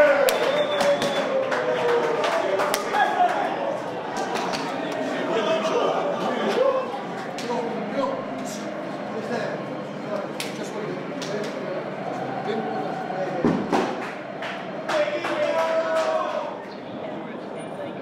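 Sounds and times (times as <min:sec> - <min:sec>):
people chattering: 0:00.0 - 0:18.0.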